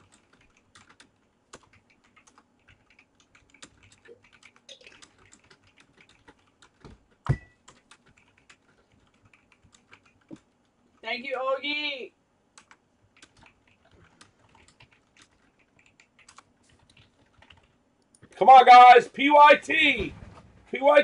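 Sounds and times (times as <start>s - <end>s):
keyboard typing clicks: 0.0s - 10.5s, 12.6s - 18.3s.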